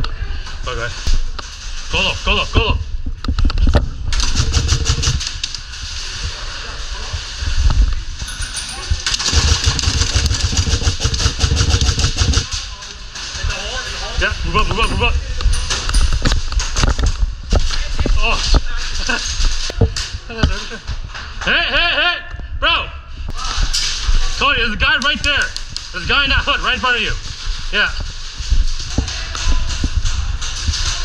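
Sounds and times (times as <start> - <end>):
airsoft guns firing: 4.2 - 5.4, 9.1 - 12.5.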